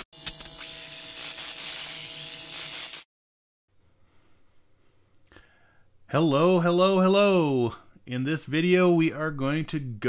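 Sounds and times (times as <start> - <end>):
neon sign buzzing: 0.0 - 3.0.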